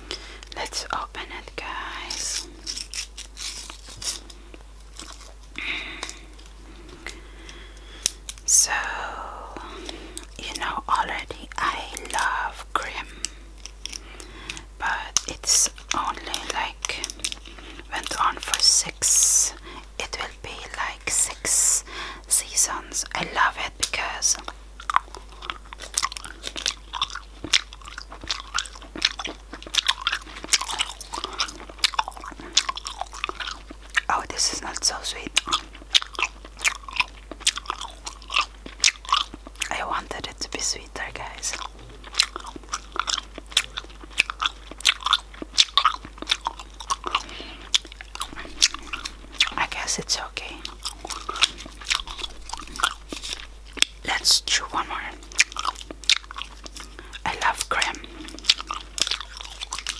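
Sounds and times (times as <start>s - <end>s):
gum chewing mouth clicks: 9.6s - 21.8s, 22.4s - 59.9s.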